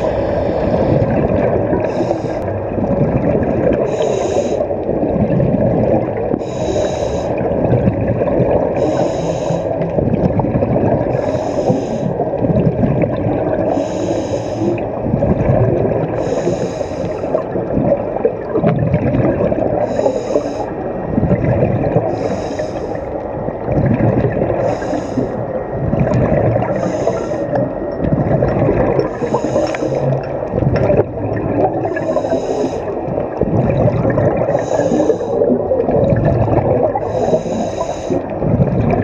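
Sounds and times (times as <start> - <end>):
exhaled bubbles gurgling: 0.0 - 39.0
scuba regulator inhalation hiss: 1.8 - 2.4, 3.9 - 4.7, 6.4 - 7.4, 8.8 - 9.7, 11.2 - 12.1, 13.7 - 14.8, 16.2 - 17.4, 19.8 - 20.7, 22.1 - 23.0, 24.6 - 25.4, 26.8 - 27.5, 29.0 - 30.1, 31.9 - 32.9, 34.5 - 35.5, 37.0 - 38.2.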